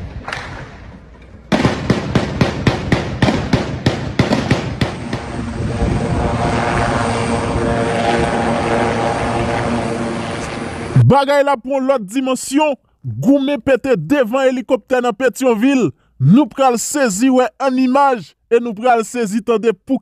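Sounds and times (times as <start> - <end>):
rapid gunshots: 1.5 - 5.2
helicopter running: 1.9 - 11.2.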